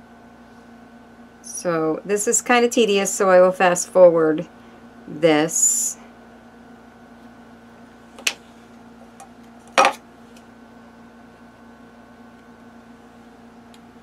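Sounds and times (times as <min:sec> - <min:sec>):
low electrical hum: 0:00.0 - 0:14.0.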